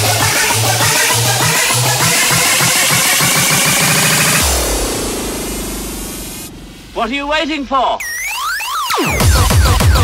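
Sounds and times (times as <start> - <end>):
fast electronic dance music: 0.0 - 10.0.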